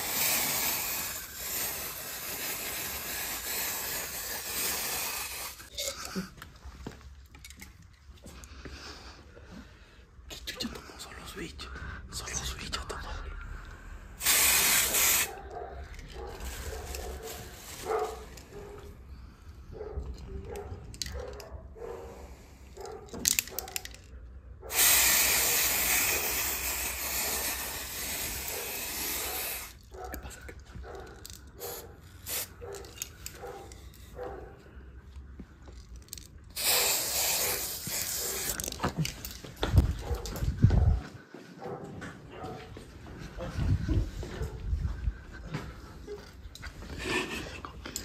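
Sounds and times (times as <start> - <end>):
aerosol spray hissing: 0.0 - 5.7, 14.2 - 15.4, 24.7 - 29.8, 31.6 - 32.6, 36.6 - 38.8.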